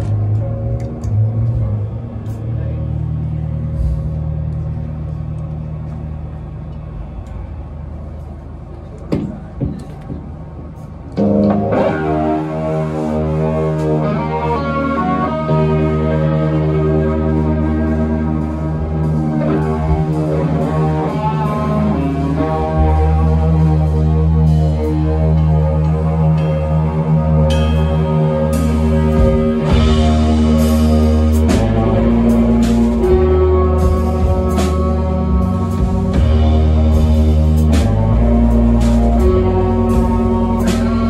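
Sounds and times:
electric guitars and bass drone chord: 0.0 - 9.0, 11.0 - 41.0
sparse drums and cymbals: 27.5 - 41.0.

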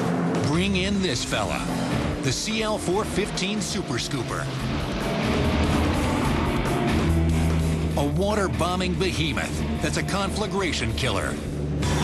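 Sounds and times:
aircraft engine rushing: 0.0 - 12.0
background music: 0.0 - 12.0.

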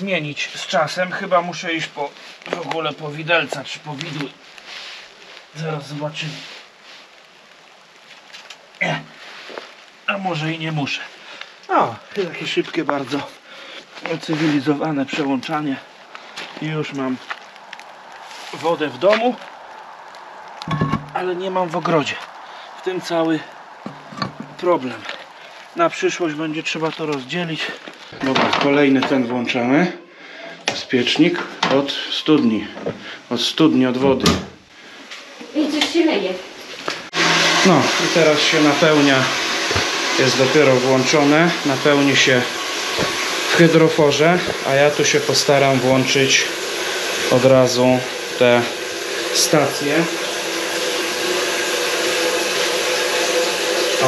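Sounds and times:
water pump humming and hissing: 23.1 - 27.6, 37.0 - 54.0.

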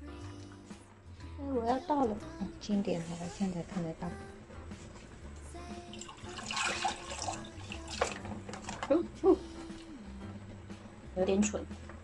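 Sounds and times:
liquid pouring into saucepan: 5.8 - 8.9.

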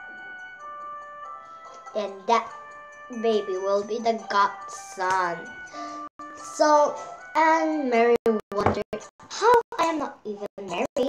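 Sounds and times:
slow soft melody: 0.0 - 8.4.

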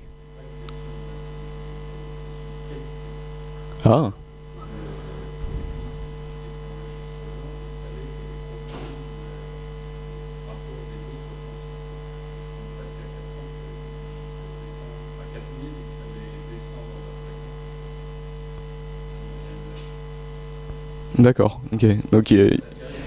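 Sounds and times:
electrical mains hum: 0.0 - 23.0.

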